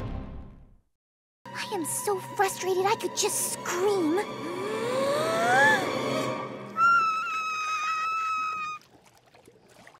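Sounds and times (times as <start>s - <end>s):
cartoon character screaming: 6.8s - 8.8s.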